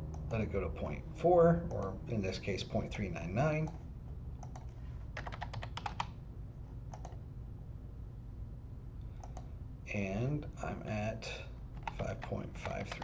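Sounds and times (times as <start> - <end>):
low steady hum: 0.0 - 13.0
typing on computer keyboard: 4.4 - 6.1, 7.0 - 7.2, 11.8 - 13.0.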